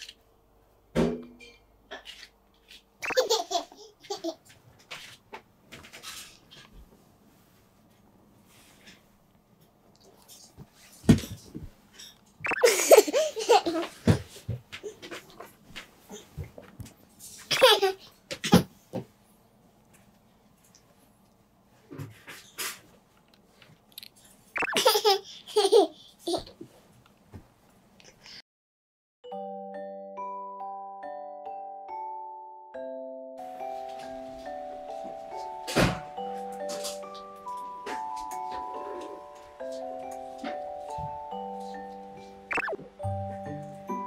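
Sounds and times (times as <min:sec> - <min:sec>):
toddler laughing: 0:03.0 - 0:04.4, 0:12.6 - 0:14.1, 0:17.5 - 0:18.0, 0:24.7 - 0:26.6
toddler giggling: 0:12.6 - 0:14.1, 0:17.5 - 0:18.0.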